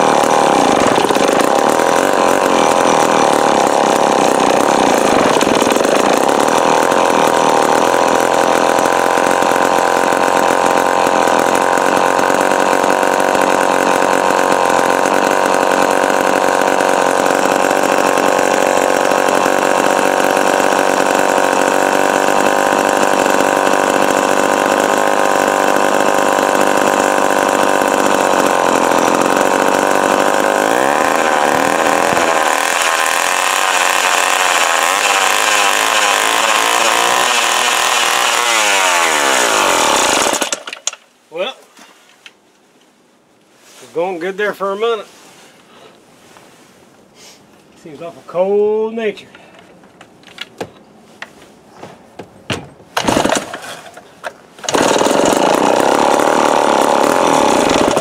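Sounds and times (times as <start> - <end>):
chainsaw running: 0.0 - 41.6, 52.9 - 58.0.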